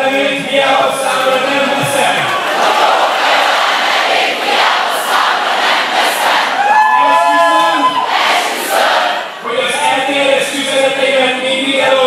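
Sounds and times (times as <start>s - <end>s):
crowd shouting and cheering: 0.0s - 12.0s
voices holding long shout: 1.7s - 10.1s.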